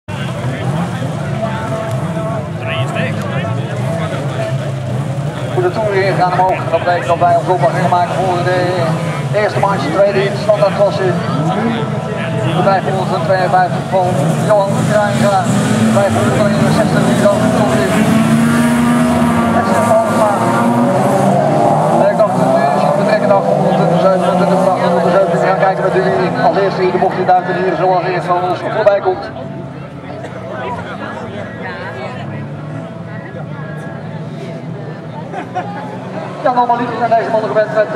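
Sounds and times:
people talking: 0.1 - 18.5, 19.4 - 37.9
car engines running: 0.1 - 37.9.

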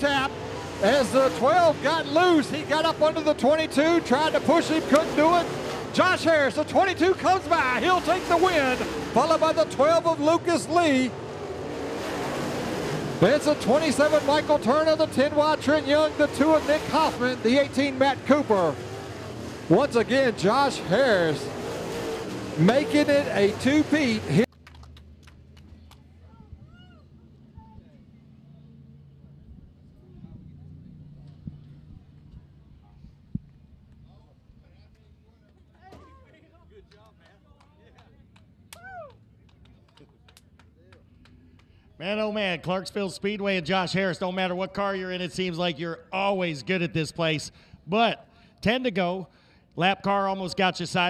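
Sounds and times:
distant people talking and calling: 0.0 - 24.6
race car engines: 0.0 - 51.0
loud shout: 26.2 - 27.8, 38.7 - 39.2.

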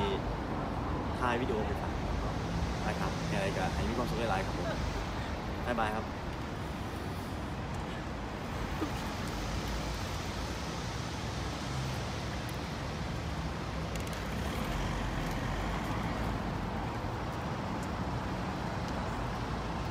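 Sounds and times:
road traffic rumble: 0.0 - 19.9.

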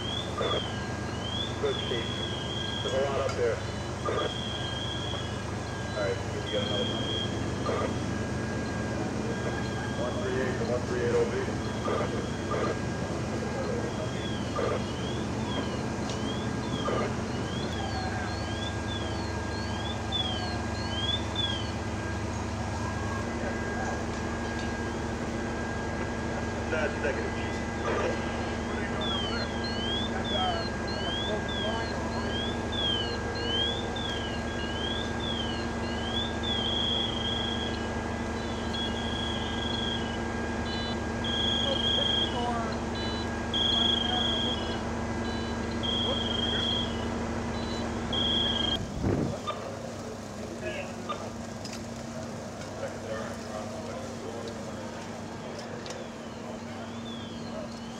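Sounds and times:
electronic alarm warbling and beeping: 0.0 - 48.8
idling engines hum: 0.0 - 57.9.

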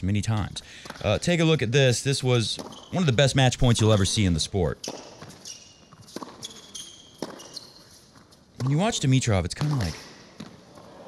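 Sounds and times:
quiet arena hush: 0.0 - 11.0
racquets hitting tennis ball: 2.6 - 3.2, 4.8 - 8.9.

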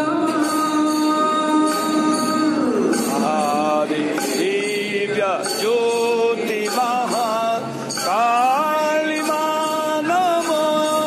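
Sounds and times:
mantra chanting: 0.0 - 11.0.

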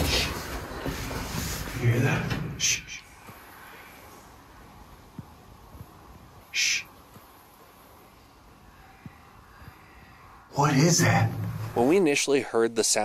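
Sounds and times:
faint whisper-like rushing: 0.0 - 11.9.

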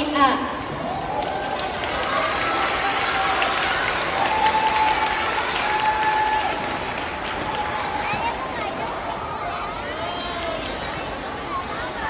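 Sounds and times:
audience clapping: 0.8 - 9.1.

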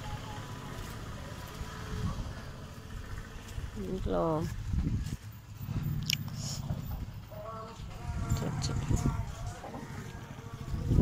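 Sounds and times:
phone microphone rumbling and crackling: 1.9 - 11.0.

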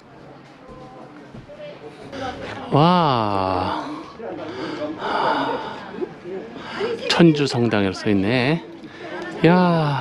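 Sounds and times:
people talking indistinctly: 0.0 - 10.0
breathy sounds: 2.1 - 7.0.

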